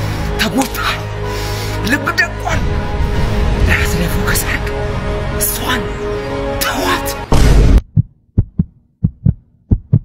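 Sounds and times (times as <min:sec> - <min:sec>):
heartbeat double thumps: 0:07.3 - 0:10.0.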